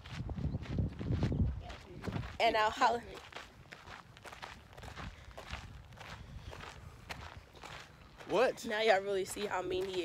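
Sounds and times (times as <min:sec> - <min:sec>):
footsteps on gravel trail: 0:00.0 - 0:10.0.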